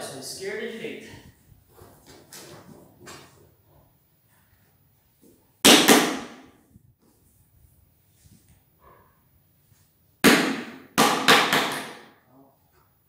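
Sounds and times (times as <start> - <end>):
sharp knock: 5.6 - 6.5, 10.2 - 12.1.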